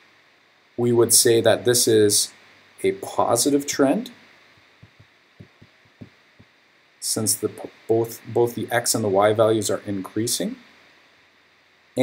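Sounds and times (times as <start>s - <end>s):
low steady hiss: 0.0s - 12.0s
pen tapping on tablet screen: 4.8s - 6.5s.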